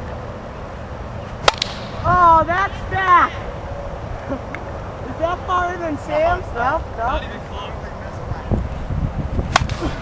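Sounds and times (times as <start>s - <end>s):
plastic bat hitting ball: 1.4s - 1.9s, 9.5s - 9.9s.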